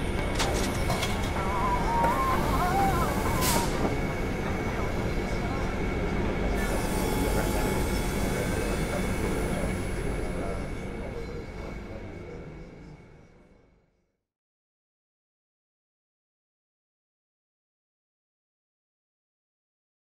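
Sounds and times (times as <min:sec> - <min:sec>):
workshop machinery running: 0:00.0 - 0:13.6
people's voices: 0:00.4 - 0:12.9.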